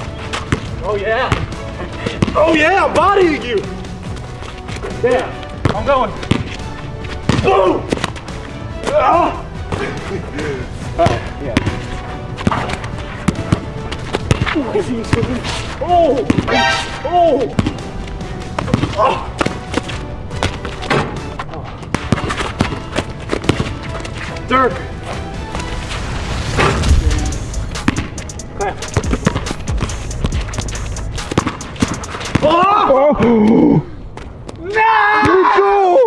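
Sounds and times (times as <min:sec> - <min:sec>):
background music: 0:00.0 - 0:35.0
basketball bouncing on wet court: 0:02.2 - 0:02.4, 0:05.6 - 0:06.6, 0:12.4 - 0:15.4, 0:17.5 - 0:17.8, 0:18.6 - 0:21.1, 0:21.9 - 0:23.7, 0:27.8 - 0:28.1, 0:31.3 - 0:32.6
loud noisy thud: 0:26.0 - 0:28.3.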